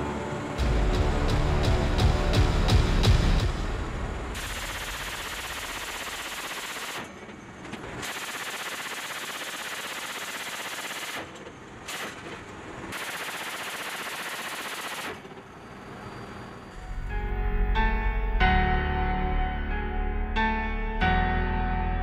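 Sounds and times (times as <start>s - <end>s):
machine gun automatic fire: 4.4s - 15.5s.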